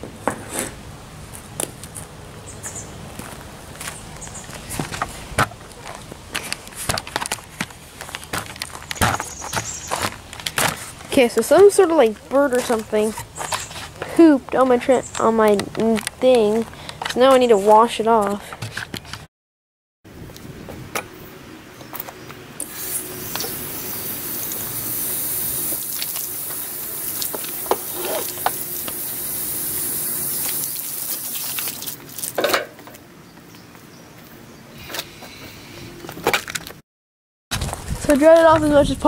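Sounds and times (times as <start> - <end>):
garden hose spraying onto board: 22.6 - 32.6.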